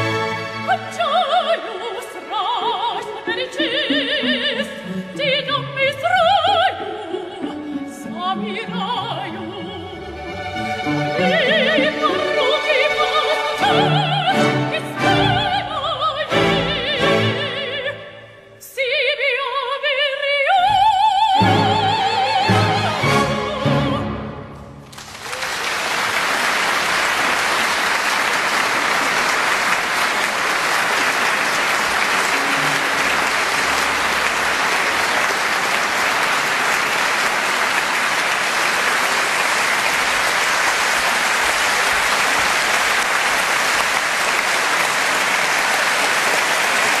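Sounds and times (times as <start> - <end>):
audience applauding: 24.8 - 47.0.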